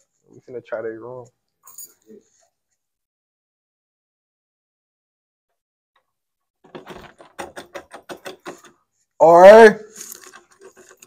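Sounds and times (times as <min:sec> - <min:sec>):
door handle jiggling: 0:06.7 - 0:08.7.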